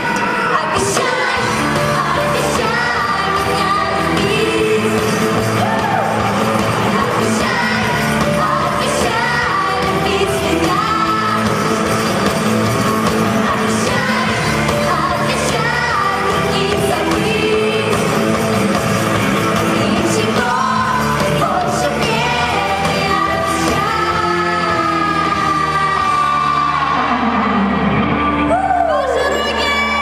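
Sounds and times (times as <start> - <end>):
woman singing: 0.0 - 12.2, 13.1 - 18.3, 19.6 - 26.8
live pop-rock band: 0.0 - 30.0.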